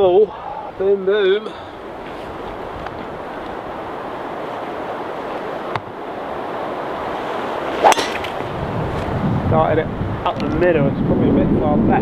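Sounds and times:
wind on microphone: 0:00.7 - 0:12.0
golf ball struck crack: 0:07.8 - 0:08.5.

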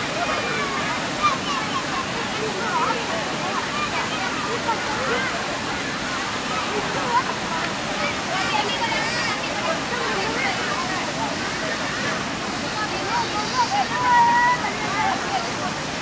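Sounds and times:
people calling and shouting: 0:00.0 - 0:16.0.

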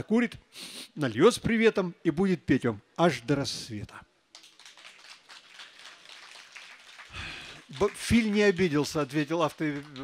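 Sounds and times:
audience applause: 0:04.4 - 0:10.0.

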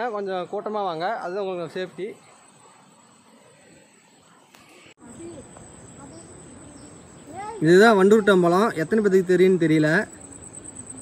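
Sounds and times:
insects droning: 0:00.0 - 0:11.0.

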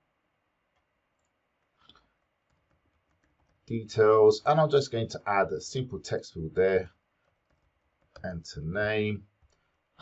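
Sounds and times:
keyboard and mouse clicks: 0:00.7 - 0:03.7, 0:07.2 - 0:08.3.

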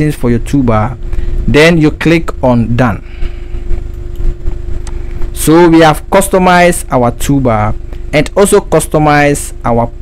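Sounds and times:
faint hum: 0:00.0 - 0:10.0
low background rumble: 0:00.0 - 0:10.0.

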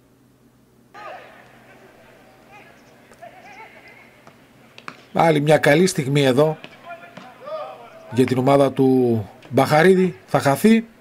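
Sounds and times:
distant shouts from players: 0:00.9 - 0:11.0
football match ambience: 0:00.9 - 0:11.0.

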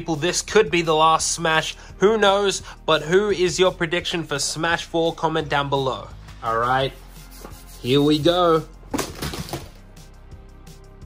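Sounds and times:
plastic figures clattering down: 0:09.0 - 0:09.7.

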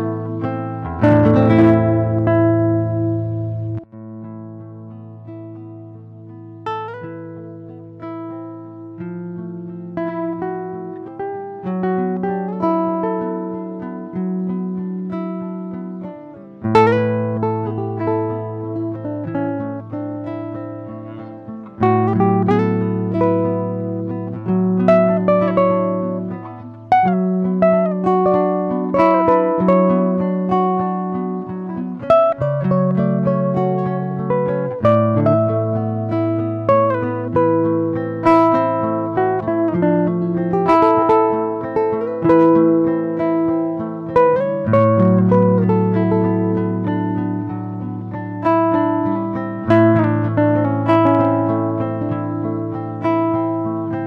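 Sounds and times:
classical guitar fingerpicking: 0:00.0 - 0:54.0.

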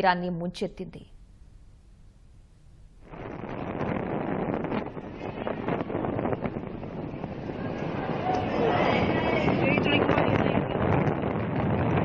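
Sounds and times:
wind buffeting microphone: 0:02.5 - 0:12.0.

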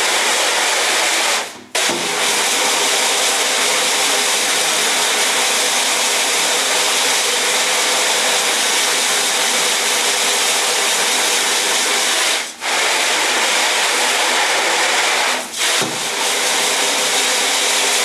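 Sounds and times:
water jet hissing on screen: 0:00.0 - 0:18.0.

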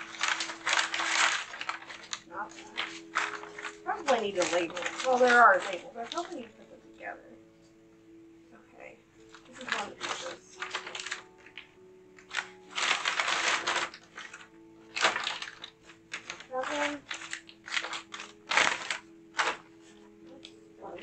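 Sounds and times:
paper rustling and crackling: 0:00.0 - 0:07.0, 0:09.2 - 0:21.0.

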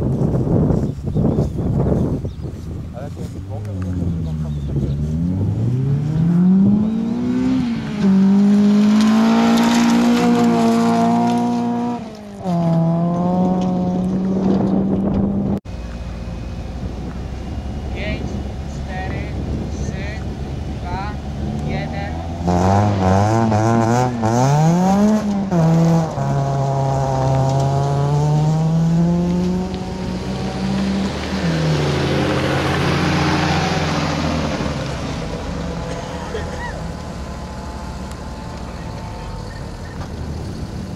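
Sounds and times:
rally car engines revving: 0:03.0 - 0:40.9
gravel spraying from tyres: 0:07.5 - 0:12.4, 0:29.2 - 0:40.9.

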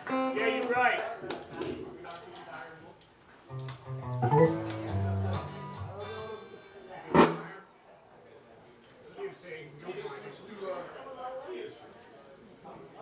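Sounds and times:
plucked guitar notes: 0:03.5 - 0:07.5
sharp drum hit: 0:07.1 - 0:07.6.

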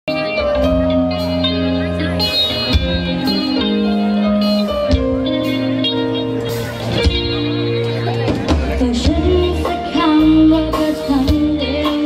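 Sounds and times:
electric guitar sustained notes: 0:00.1 - 0:12.0
keyboard sustained notes: 0:00.1 - 0:12.0.

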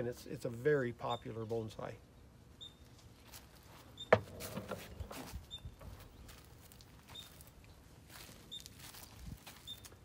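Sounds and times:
faint footsteps: 0:02.8 - 0:10.0.

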